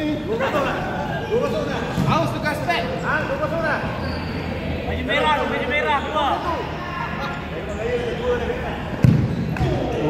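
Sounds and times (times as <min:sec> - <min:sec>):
players' voices: 0:00.0 - 0:10.0
ball kicked with a thud: 0:09.0 - 0:09.8.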